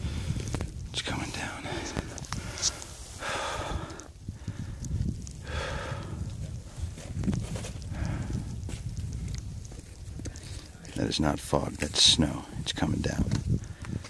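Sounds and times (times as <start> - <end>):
wind buffeting a microphone: 0.0 - 14.0.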